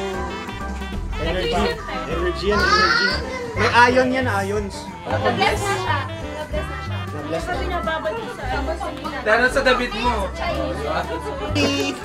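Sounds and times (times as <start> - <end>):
background music with bass: 0.0 - 12.0
people talking over each other: 1.1 - 12.0.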